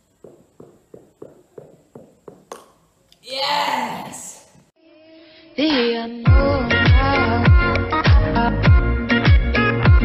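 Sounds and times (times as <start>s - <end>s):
ping pong ball bouncing down stairs: 0.2s - 2.8s.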